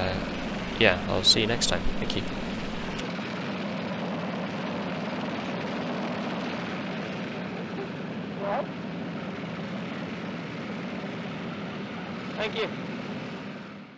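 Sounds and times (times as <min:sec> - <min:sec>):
engine-like drone: 0:00.0 - 0:13.9.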